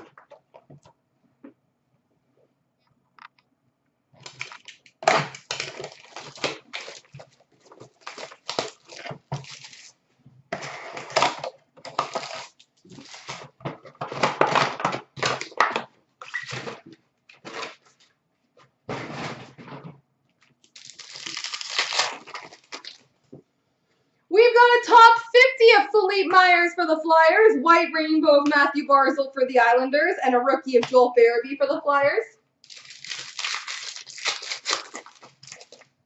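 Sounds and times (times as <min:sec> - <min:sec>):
cardboard and foil tearing: 0:04.2 - 0:10.0, 0:10.9 - 0:13.6, 0:20.6 - 0:23.0, 0:32.6 - 0:35.9.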